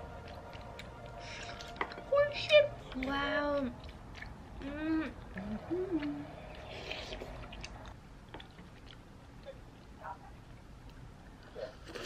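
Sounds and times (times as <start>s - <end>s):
soft chewing: 0.0s - 12.0s
person humming mm: 4.6s - 6.3s.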